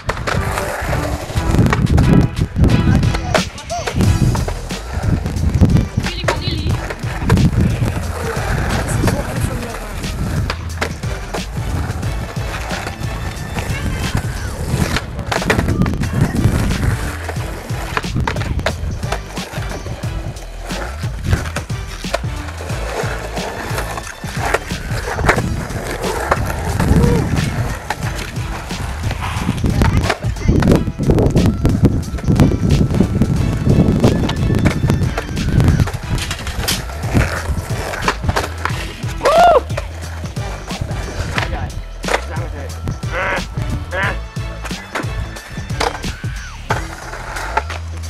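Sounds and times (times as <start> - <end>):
skateboard clacking on street: 0.0 - 43.9, 44.6 - 48.0
skateboard wheels rolling on asphalt: 0.0 - 48.0.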